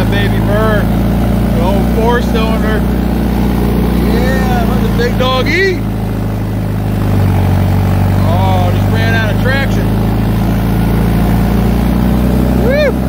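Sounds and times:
tractor diesel engine under load: 0.0s - 13.0s.

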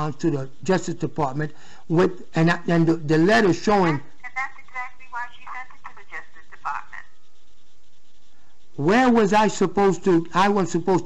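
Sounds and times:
voice through telephone line: 3.8s - 7.1s.

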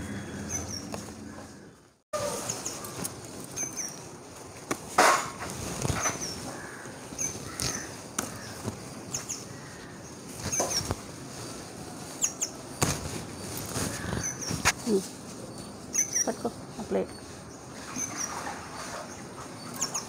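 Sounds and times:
small birds chirping: 0.0s - 4.1s, 5.8s - 20.0s
leaves and stems rustling: 0.4s - 20.0s
stems snapping and crackling: 7.4s - 8.8s.

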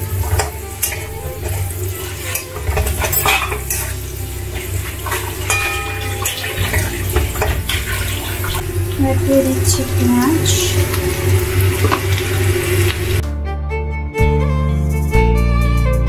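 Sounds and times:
metal spatula scraping a wok: 0.0s - 8.7s
light sizzle of frying: 0.0s - 13.2s.

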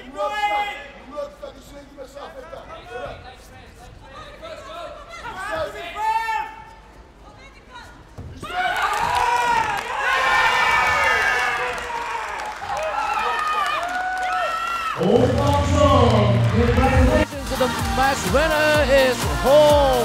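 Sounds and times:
arena crowd cheering and shouting: 8.4s - 20.0s.

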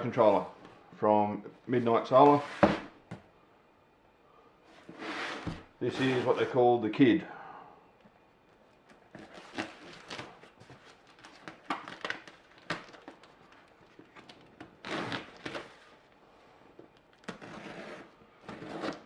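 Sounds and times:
tape peeling off cardboard: 8.8s - 16.0s
knife scraping tape: 14.8s - 15.6s, 17.2s - 19.0s.

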